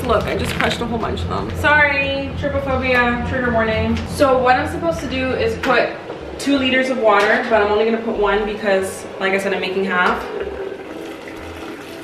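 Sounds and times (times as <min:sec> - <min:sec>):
water pouring into a pot: 0:09.5 - 0:12.0.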